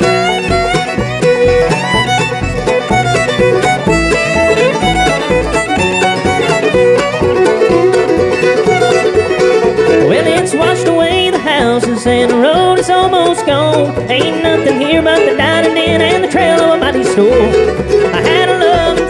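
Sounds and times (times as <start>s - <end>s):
acoustic guitar: 0.0s - 19.0s
banjo: 0.0s - 19.0s
fiddle: 0.0s - 19.0s
mandolin: 0.0s - 19.0s
upright bass: 0.0s - 19.0s.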